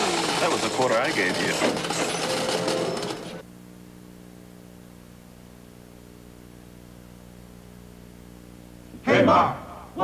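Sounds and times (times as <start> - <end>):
slot machines clattering and ringing: 0.0 - 3.4
steady electrical hum: 0.0 - 10.0.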